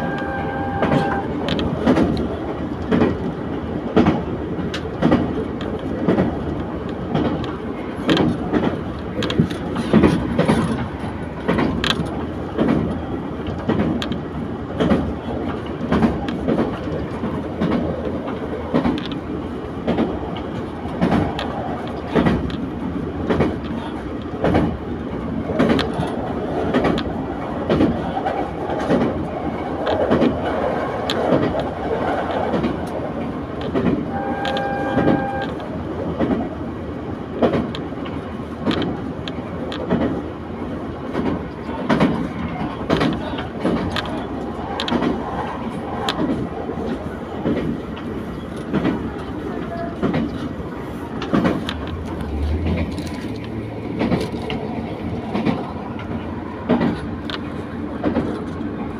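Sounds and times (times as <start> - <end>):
short train horn: 0.0 - 1.4, 34.1 - 35.6
wheels clicking over rail joints: 0.0 - 36.6, 37.3 - 58.9
diesel railcar running: 0.0 - 58.9.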